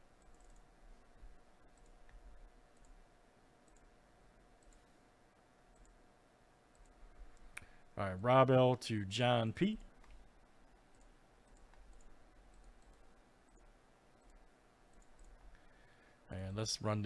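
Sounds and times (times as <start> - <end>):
computer mouse clicks: 0.2 - 0.7, 1.6 - 3.0, 3.6 - 4.0, 4.6 - 5.0, 5.7 - 6.0, 6.7 - 7.7, 9.8 - 10.3, 10.9 - 15.6.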